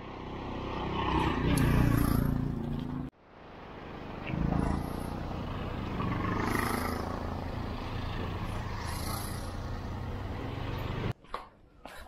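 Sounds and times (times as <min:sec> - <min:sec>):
auto-rickshaw engines passing: 0:00.0 - 0:11.2.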